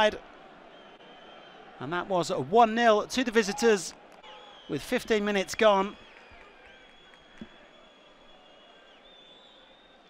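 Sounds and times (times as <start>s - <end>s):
faint stadium crowd: 0.0s - 10.0s
thin high whistle-like tones: 5.9s - 10.0s.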